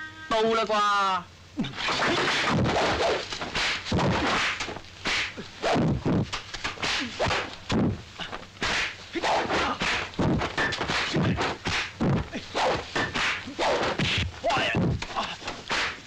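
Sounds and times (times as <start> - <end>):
sharp whacks of blows: 1.6 - 8.0, 8.6 - 16.0
staff and fist swishes: 1.7 - 7.9, 8.6 - 16.0.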